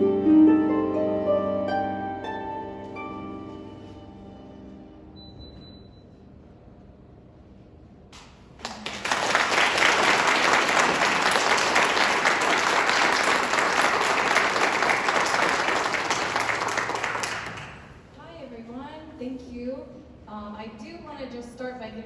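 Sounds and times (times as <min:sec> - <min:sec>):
audience applause: 0:08.6 - 0:18.0.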